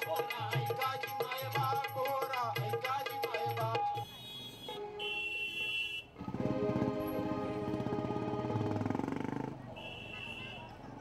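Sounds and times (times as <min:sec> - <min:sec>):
low crowd chatter: 0:05.6 - 0:11.0.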